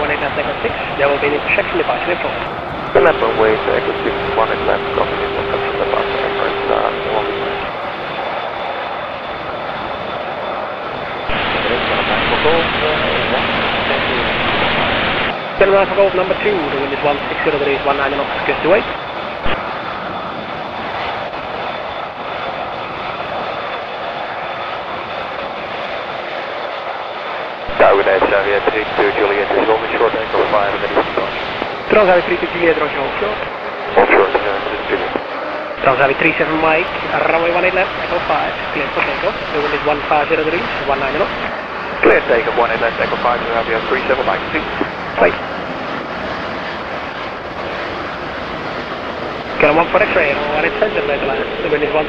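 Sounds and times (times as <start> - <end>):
faint high whine: 0.0 - 25.2, 27.2 - 46.0, 47.4 - 52.0
jet engines at low thrust: 0.0 - 52.0.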